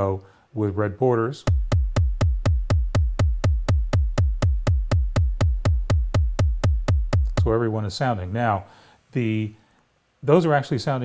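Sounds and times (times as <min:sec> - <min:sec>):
bass drum kicks: 0:01.5 - 0:07.6.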